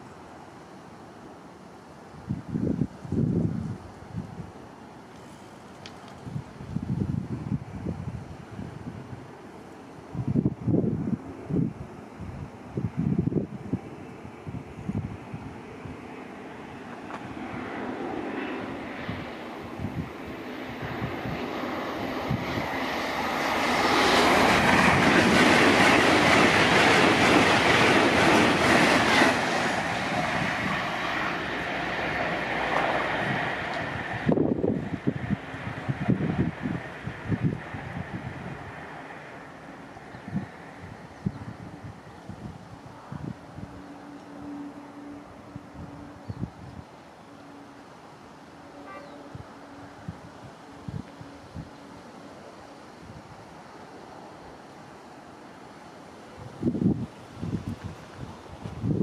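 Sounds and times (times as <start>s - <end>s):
train passing: 0.0s - 59.0s
wind buffeting microphone: 2.2s - 4.6s, 5.8s - 9.4s, 10.0s - 47.0s, 49.0s - 51.9s, 56.3s - 59.0s.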